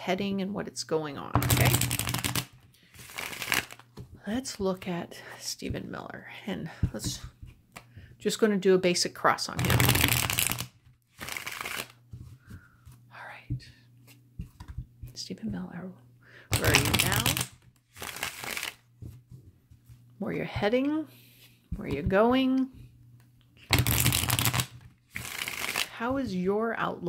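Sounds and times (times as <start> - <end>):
cards being riffle-shuffled: 1.4 - 4.0, 9.6 - 13.0, 16.5 - 19.9, 23.7 - 26.0.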